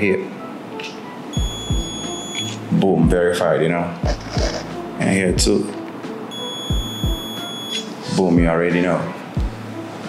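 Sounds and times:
high steady beep: 0:01.4 - 0:02.6, 0:06.3 - 0:07.9.

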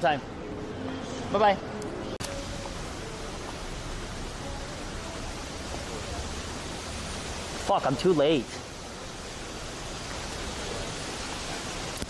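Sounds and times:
steady rushing outdoor ambience: 0:00.0 - 0:12.0.

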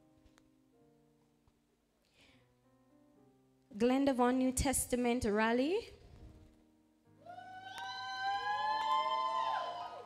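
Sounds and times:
congregation cheering: 0:07.2 - 0:10.0.

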